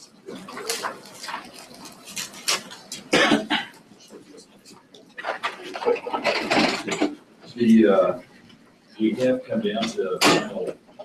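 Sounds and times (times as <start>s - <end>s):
person coughing: 3.1s - 3.8s.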